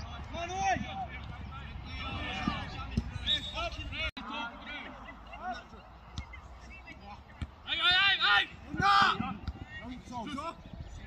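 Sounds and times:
players shouting: 0:00.0 - 0:10.6.

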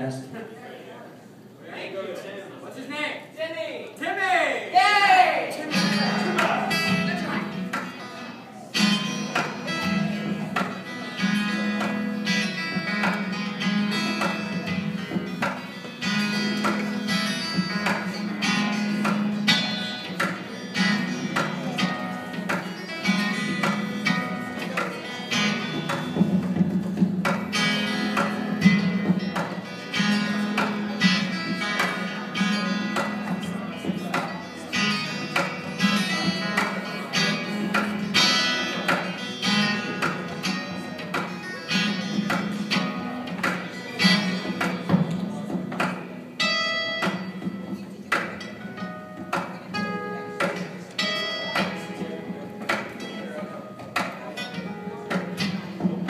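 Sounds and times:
guitar strumming: 0:05.4 - 0:56.0.

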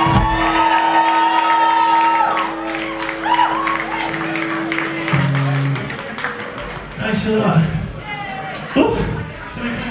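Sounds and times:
crowd cheering and whooping: 0:00.0 - 0:06.3
rock band closing chord: 0:00.0 - 0:06.9.

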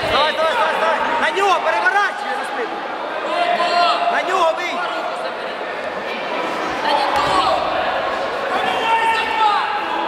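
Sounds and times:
shouting voices echoing: 0:06.8 - 0:10.0.

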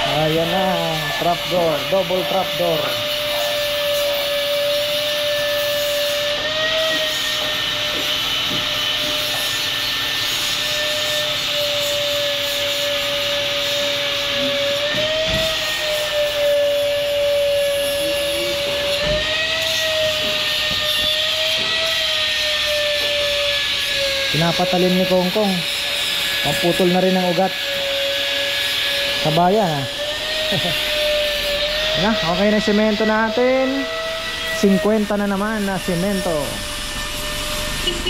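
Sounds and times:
angle grinder cutting steel pipe: 0:00.0 - 0:38.0.

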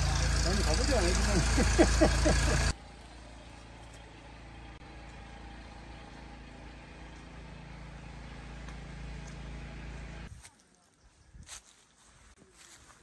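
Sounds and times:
low mechanical hum: 0:00.0 - 0:10.4.

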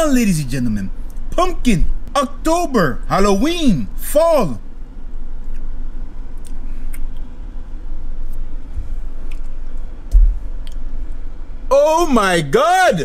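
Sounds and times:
steady low rumble: 0:00.0 - 0:12.6
low thump: 0:10.1 - 0:10.4.

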